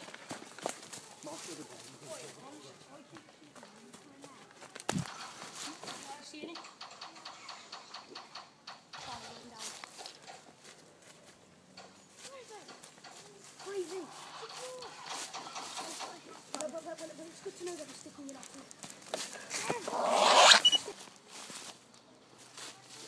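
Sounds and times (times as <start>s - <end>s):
footsteps in dry leaves: 0.0s - 6.2s, 12.0s - 23.0s.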